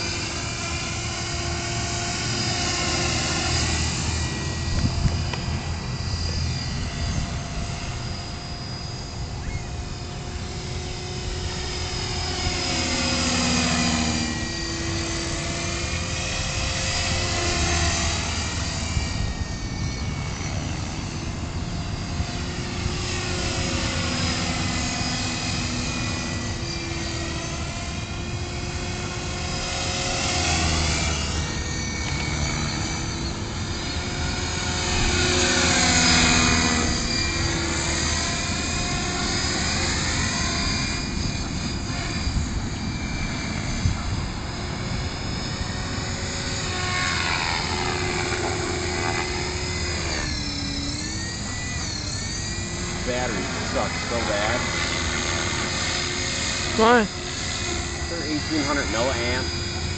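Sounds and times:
rc helicopter rotor whine: 0:00.0 - 0:59.9.

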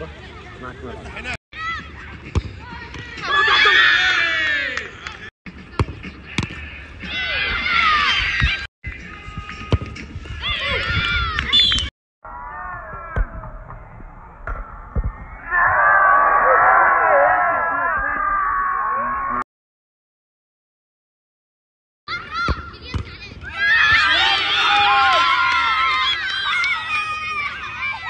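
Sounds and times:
young voices shouting and cheering: 0:01.6 - 0:05.3, 0:06.2 - 0:09.7, 0:10.3 - 0:11.7, 0:15.4 - 0:19.4, 0:22.1 - 0:28.0
children shouting: 0:22.1 - 0:28.0
children cheering: 0:23.5 - 0:28.0.

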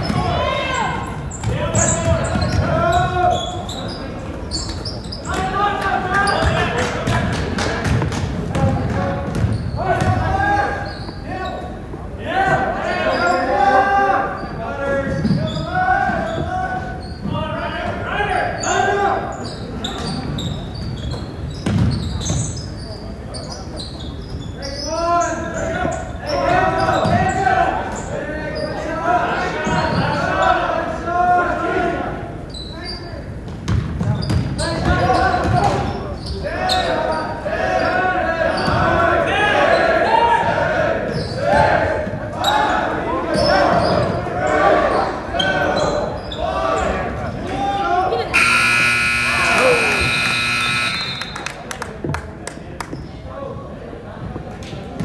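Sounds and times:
indistinct voices calling out: 0:36.5 - 0:51.5.

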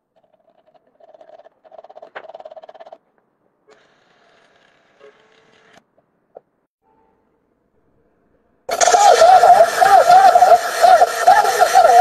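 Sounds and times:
recorder hiss: 0:08.7 - 0:12.0.

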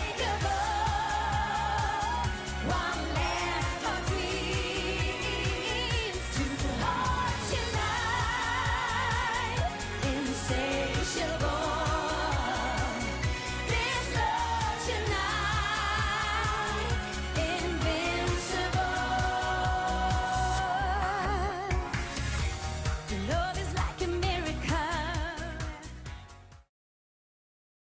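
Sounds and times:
woman singing with vibrato: 0:00.0 - 0:21.9, 0:23.1 - 0:25.9
up-tempo pop song with dance beat: 0:00.0 - 0:26.6.

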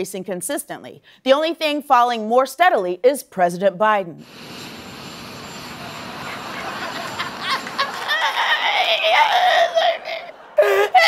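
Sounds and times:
jet engine hissing and whining: 0:04.2 - 0:08.1.

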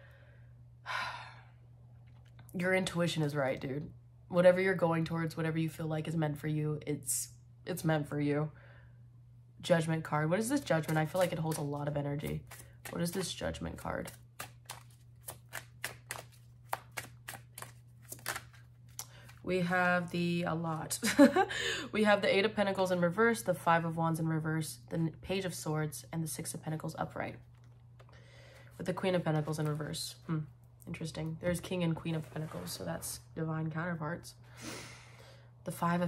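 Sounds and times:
woman sighing: 0:00.8 - 0:01.5
cards clicking: 0:10.6 - 0:13.4, 0:14.0 - 0:19.4.

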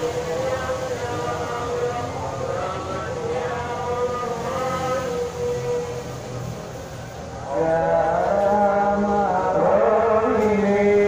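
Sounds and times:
person chanting long gliding notes: 0:00.0 - 0:06.6, 0:07.4 - 0:11.0.

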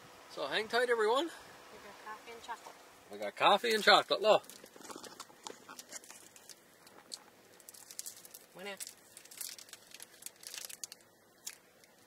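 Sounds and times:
plastic wrapper crinkling: 0:03.7 - 0:12.0
wafer bar being chewed: 0:04.4 - 0:12.0.

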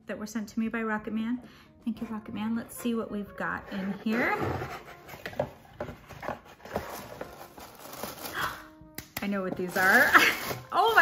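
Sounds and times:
cardboard box handling: 0:03.7 - 0:08.3
tissue paper crinkling: 0:06.0 - 0:08.7, 0:09.6 - 0:11.0.

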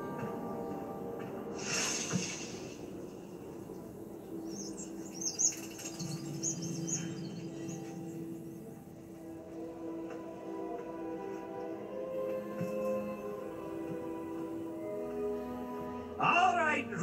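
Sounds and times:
soft film score: 0:00.0 - 0:17.0
hissing whoosh: 0:01.5 - 0:03.8
high chirping calls: 0:04.2 - 0:08.7.

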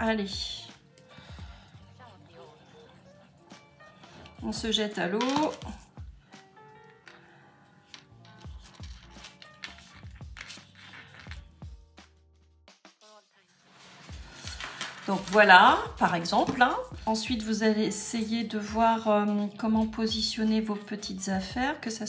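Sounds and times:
soft background music: 0:00.0 - 0:22.0
fingers rustling and tapping gauze: 0:07.8 - 0:11.6.

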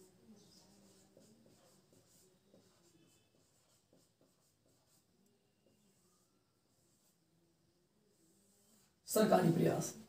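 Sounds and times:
marker writing on whiteboard: 0:00.0 - 0:10.0
marker squeaks: 0:05.6 - 0:07.1.

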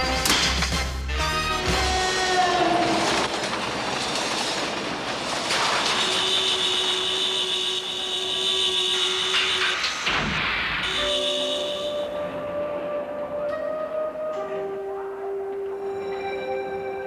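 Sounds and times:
cartoon train rumbling and clattering: 0:00.0 - 0:12.8
long steady horn note: 0:05.9 - 0:09.9, 0:10.8 - 0:15.8
train horn dropping in pitch: 0:06.0 - 0:09.8, 0:10.8 - 0:13.7.

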